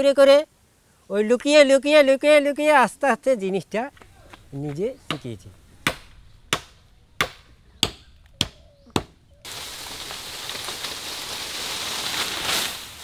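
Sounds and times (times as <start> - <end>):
bamboo leaves rustling: 9.2 - 13.0.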